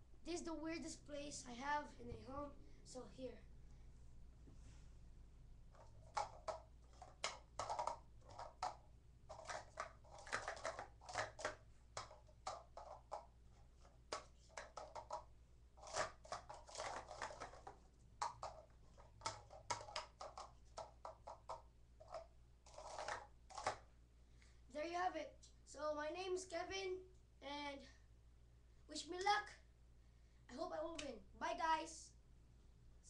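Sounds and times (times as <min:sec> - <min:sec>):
plastic cups clattering: 0:05.7 - 0:23.8.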